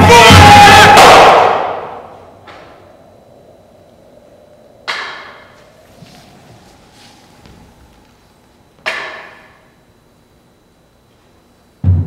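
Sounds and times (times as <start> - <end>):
ensemble shout: 0.0 - 2.1
music: 11.8 - 12.0.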